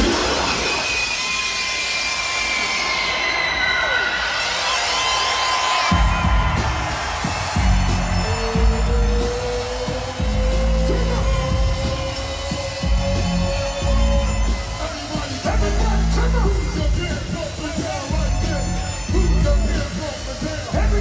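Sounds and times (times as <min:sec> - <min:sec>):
loud live concert music: 0:00.0 - 0:21.0
heavy bass beat: 0:05.9 - 0:21.0.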